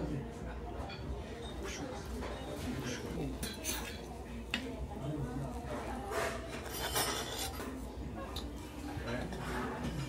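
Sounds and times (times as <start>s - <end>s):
metal spatula scraping griddle: 6.0s - 7.7s.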